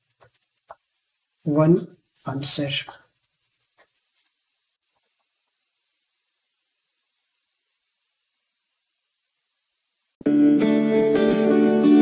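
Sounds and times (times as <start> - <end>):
stylus scratching on a tablet: 3.1 - 4.4.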